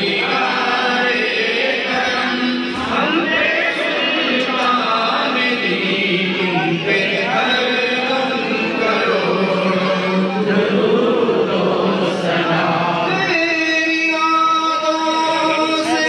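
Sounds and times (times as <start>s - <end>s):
men chanting: 0.0s - 16.0s.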